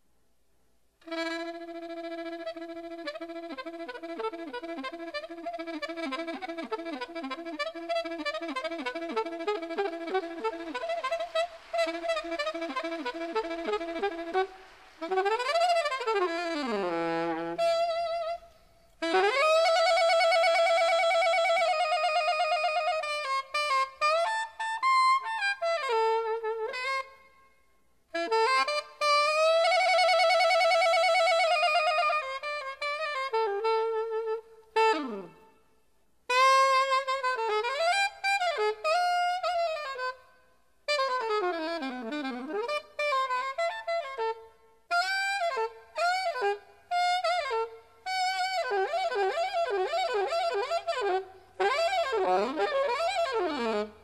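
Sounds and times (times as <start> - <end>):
alto saxophone playing: 1.0 - 27.3, 28.1 - 35.7, 36.3 - 40.2, 40.8 - 54.0.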